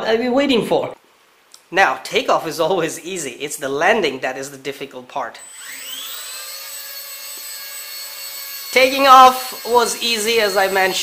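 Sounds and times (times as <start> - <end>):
model helicopter motor whine: 5.4 - 11.0.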